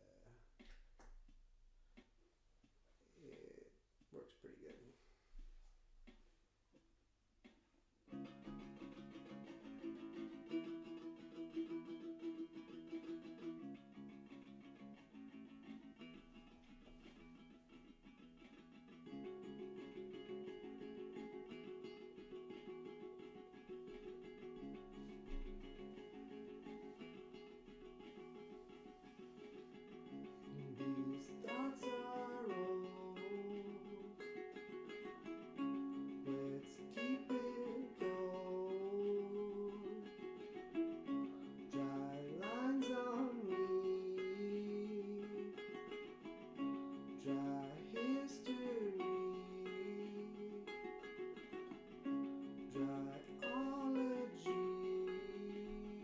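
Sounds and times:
acoustic guitar strumming chords: 18.4s - 56.0s
man singing: 30.4s - 34.3s, 36.0s - 40.3s, 41.4s - 45.9s, 47.0s - 51.3s, 52.6s - 56.0s.

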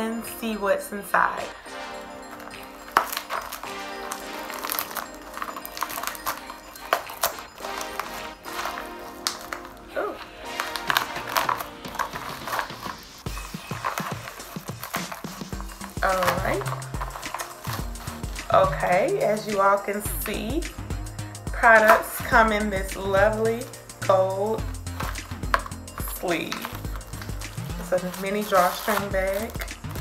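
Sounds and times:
background music with low beat: 1.3s - 30.0s
plastic mailer crinkling: 1.7s - 20.6s, 21.6s - 30.0s.

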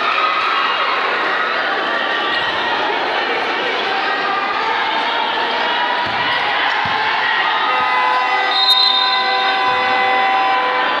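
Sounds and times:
crowd din: 0.0s - 11.0s.

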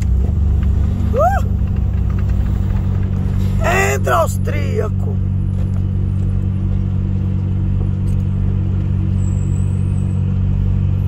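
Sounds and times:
truck diesel engine rumbling: 0.0s - 11.0s.

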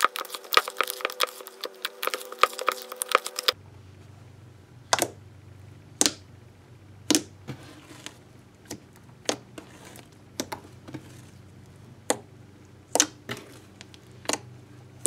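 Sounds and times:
slime squishing: 0.0s - 3.6s, 4.8s - 15.0s.

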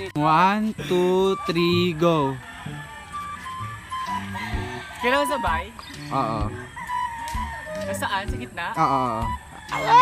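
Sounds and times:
background music: 0.0s - 10.0s
rooster crowing: 1.7s - 8.2s, 9.1s - 10.0s.

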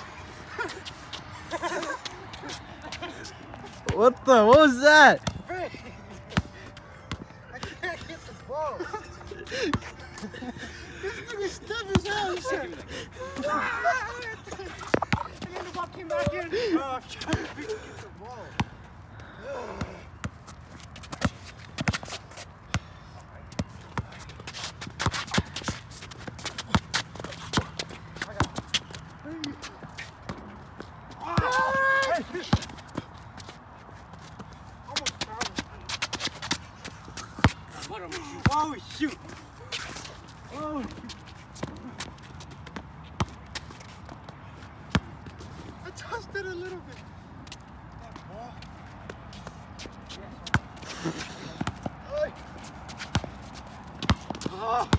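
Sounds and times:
person shouting: 31.2s - 32.5s, 54.5s - 54.9s
basketball bouncing on concrete: 37.4s - 38.7s, 41.6s - 43.7s, 50.4s - 50.8s, 51.6s - 52.0s, 52.9s - 54.9s.

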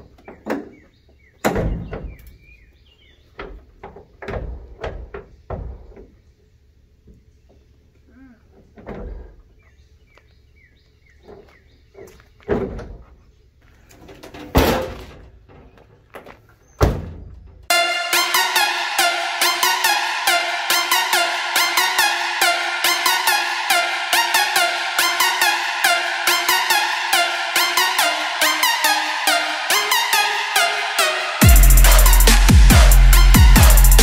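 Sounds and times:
small birds chirping: 0.0s - 4.3s, 6.1s - 12.5s
metal truck door shutting: 1.4s - 2.4s, 3.4s - 6.1s, 14.1s - 15.4s, 16.8s - 17.6s.

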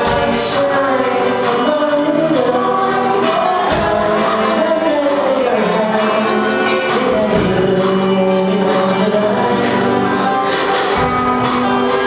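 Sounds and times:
acoustic and electric guitars: 0.0s - 12.0s
person singing: 0.0s - 12.0s.

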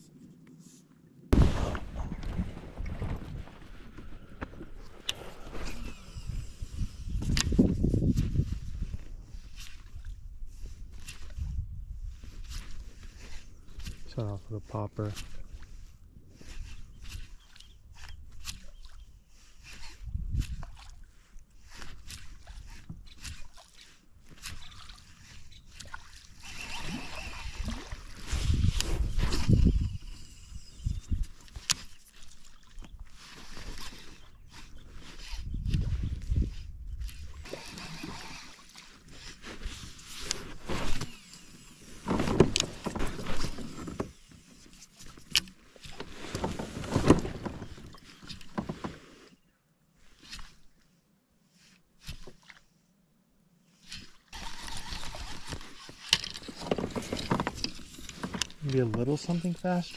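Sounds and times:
water against kayak hull: 1.4s - 11.6s, 15.2s - 50.8s, 53.8s - 59.9s
knocks and rattles of gear: 45.1s - 49.0s, 54.4s - 59.3s.

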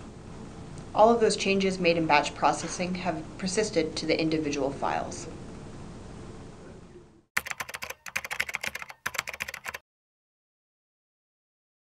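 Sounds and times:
rapid keyboard typing: 7.4s - 9.8s.

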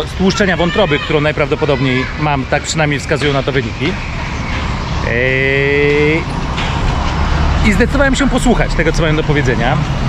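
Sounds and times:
man's drawn-out hesitation sound: 5.0s - 6.4s.

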